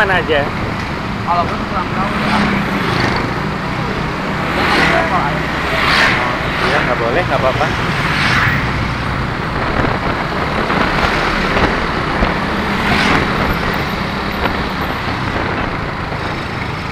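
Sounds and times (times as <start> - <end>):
street traffic noise: 0.0 - 16.9
vehicle rushing past: 0.0 - 16.9.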